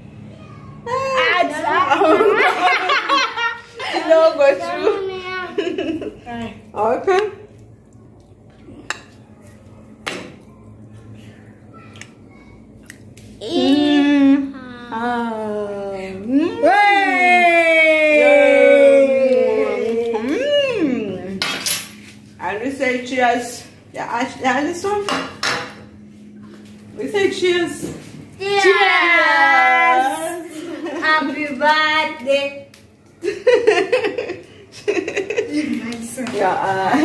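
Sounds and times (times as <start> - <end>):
low steady hum: 0.0 - 37.0.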